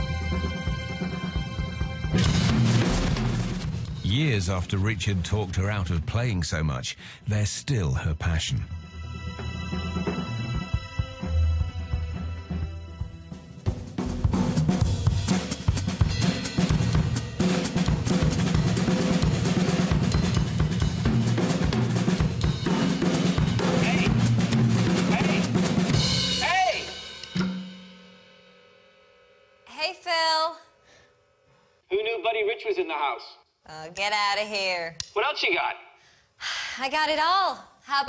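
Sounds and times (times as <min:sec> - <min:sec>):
drum kit played fast: 0:00.0 - 0:06.7, 0:13.2 - 0:29.0.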